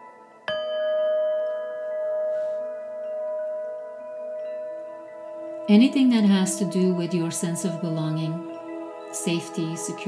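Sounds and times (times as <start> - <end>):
singing bowl ringing: 0.0 - 10.0.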